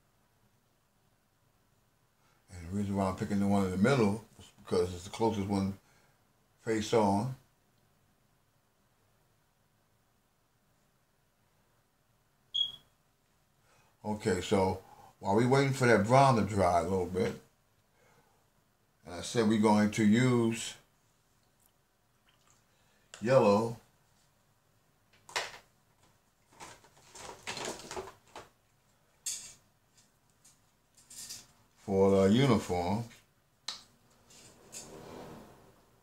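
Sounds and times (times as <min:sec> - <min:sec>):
art supplies scraping: 0:34.0 - 0:36.0.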